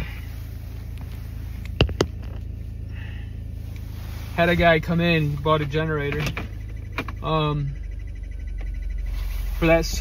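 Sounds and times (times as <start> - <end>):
car idling hum: 0.0 - 10.0.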